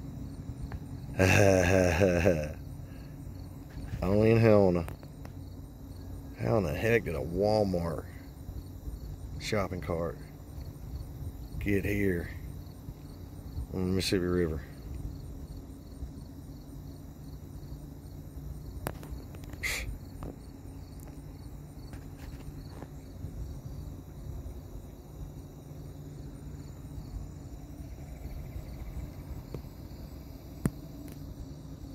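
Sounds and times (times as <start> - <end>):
insects chirping: 0.0 - 31.9
low mechanical hum: 0.0 - 31.9.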